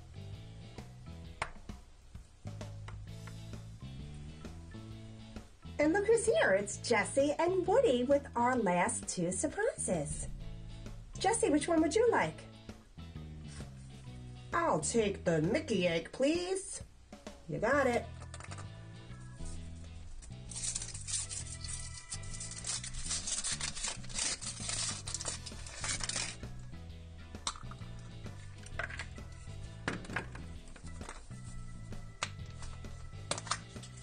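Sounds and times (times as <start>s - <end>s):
background music with bass line: 0.0s - 16.1s, 16.8s - 34.0s
foil wrapper crinkling: 20.2s - 26.5s
plastic capsule clicks: 27.4s - 27.8s, 33.2s - 34.0s.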